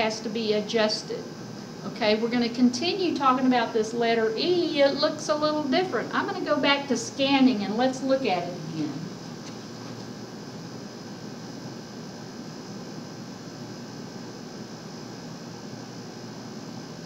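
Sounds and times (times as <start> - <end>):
steady background hiss: 0.0 - 17.0.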